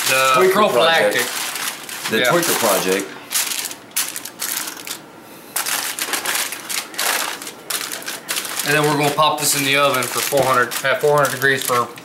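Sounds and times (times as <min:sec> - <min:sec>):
aluminum foil crinkling: 0:00.0 - 0:05.0, 0:05.6 - 0:12.0.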